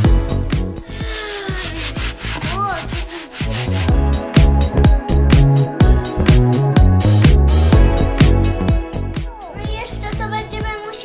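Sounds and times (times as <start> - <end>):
upbeat background music: 0.0 - 11.0
sand sifting through a colander: 1.0 - 4.0.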